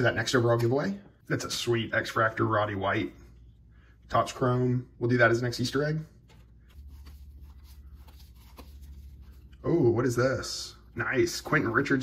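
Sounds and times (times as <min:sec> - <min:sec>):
steady low hum: 0:00.0 - 0:12.0
cards sliding against cards: 0:06.2 - 0:09.6.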